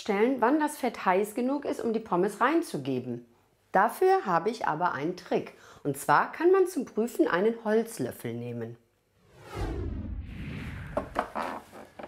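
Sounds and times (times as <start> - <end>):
falling whoosh ending in boom: 9.2 - 11.4.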